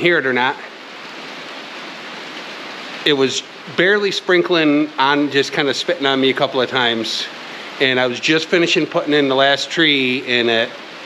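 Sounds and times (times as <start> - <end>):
rain on a roof: 0.0 - 11.0.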